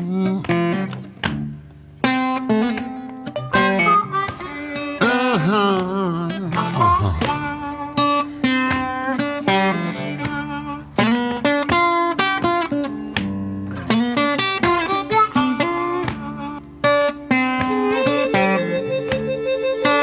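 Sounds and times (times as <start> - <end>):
acoustic blues guitar: 0.0 - 20.0
wavering harmonica note: 3.4 - 11.6, 14.6 - 20.0.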